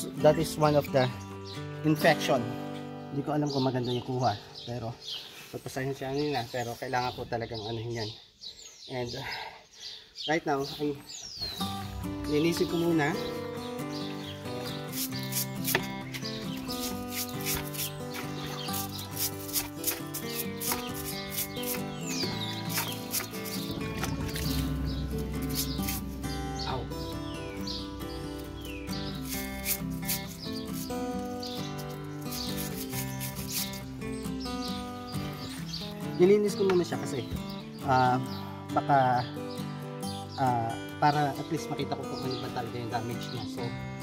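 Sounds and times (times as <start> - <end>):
high chirps and clicks: 11.5 - 36.1
background music: 11.5 - 44.0.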